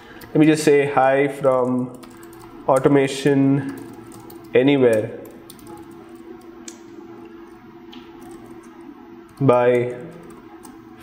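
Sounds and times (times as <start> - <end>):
faint steady hum: 0.0 - 11.0
computer keyboard keystrokes: 1.4 - 2.9, 3.6 - 6.8, 7.9 - 10.8.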